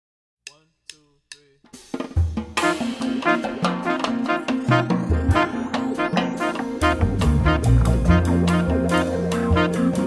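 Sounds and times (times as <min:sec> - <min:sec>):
jazz drum strokes: 0:01.6 - 0:10.0
jazz band playing: 0:02.0 - 0:10.0.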